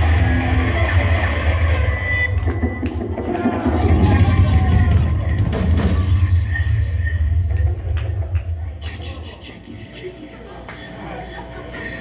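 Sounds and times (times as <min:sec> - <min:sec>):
rock band playing: 0:00.0 - 0:07.4
electric guitar: 0:00.0 - 0:08.8
bass guitar: 0:00.0 - 0:09.1.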